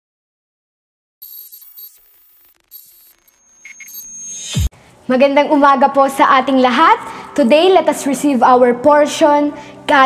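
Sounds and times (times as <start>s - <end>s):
short high beeps: 1.2s - 4.7s
crackly static: 1.2s - 5.2s.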